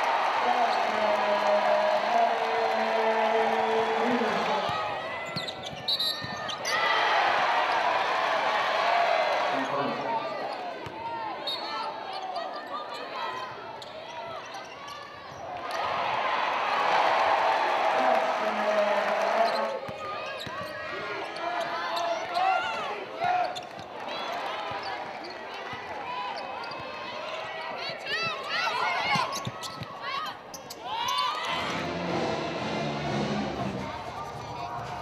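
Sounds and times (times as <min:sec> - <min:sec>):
voices of players and crowd: 0:00.0 - 0:35.0
sneakers squeaking: 0:04.6 - 0:06.9, 0:10.3 - 0:15.9, 0:19.4 - 0:31.7.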